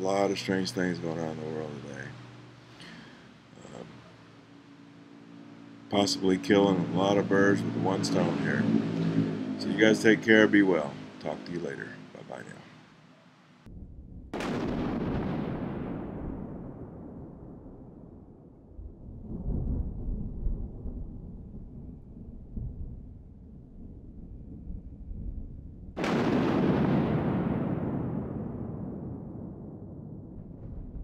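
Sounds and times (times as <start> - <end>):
low rumble: 13.6 - 26.0, 27.8 - 31.0
loud rumbling boom: 13.7 - 31.0.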